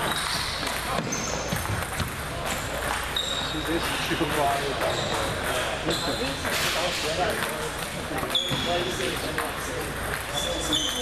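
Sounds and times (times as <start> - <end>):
table tennis ball clicks: 7.3 - 11.0.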